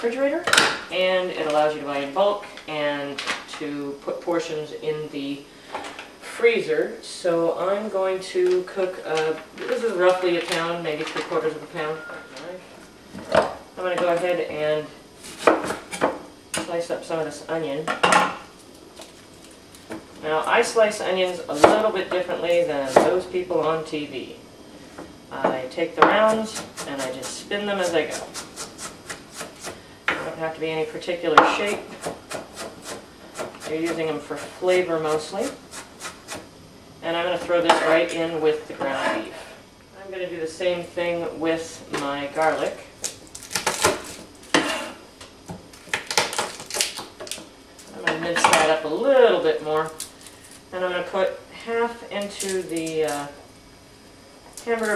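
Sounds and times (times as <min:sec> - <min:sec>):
knife chopping on cutting board: 0:31.4 - 0:34.0.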